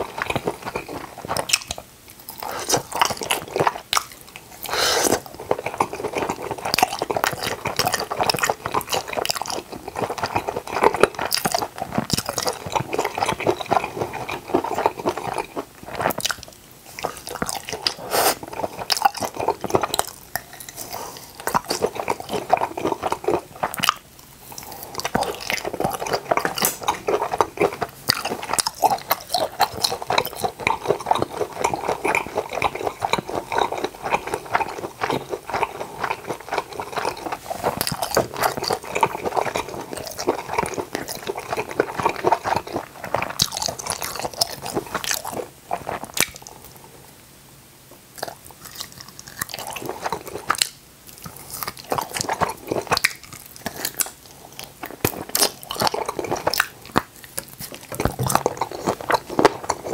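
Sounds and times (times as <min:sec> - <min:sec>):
close chewing and biting: 0:00.0 - 0:46.8, 0:48.1 - 0:59.9.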